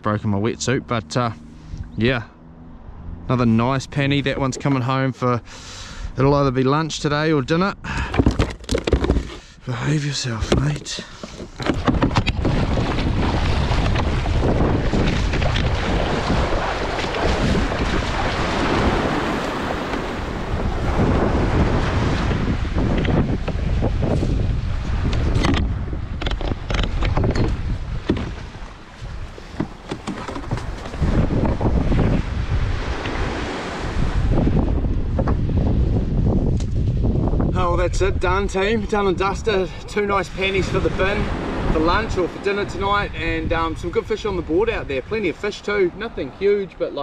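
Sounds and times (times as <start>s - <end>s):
wind buffeting microphone: 10.3s - 46.8s
sea water washing: 10.6s - 35.0s.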